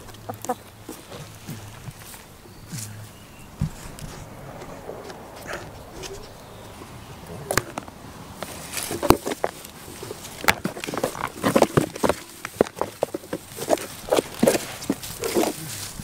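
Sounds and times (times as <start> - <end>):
goats crunching treats: 0.0 - 16.0.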